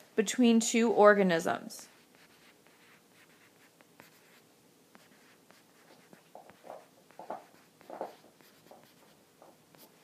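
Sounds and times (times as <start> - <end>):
stylus writing on tablet screen: 1.8 - 10.0.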